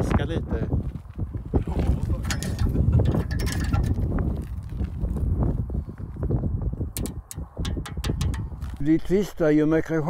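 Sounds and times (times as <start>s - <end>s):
wind buffeting microphone: 0.0s - 9.9s
sharp irregular clicks: 7.0s - 8.6s.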